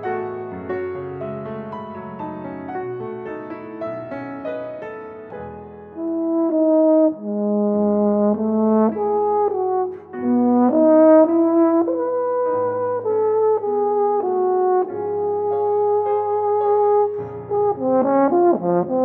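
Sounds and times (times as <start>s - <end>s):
piano accompaniment: 0.0s - 19.0s.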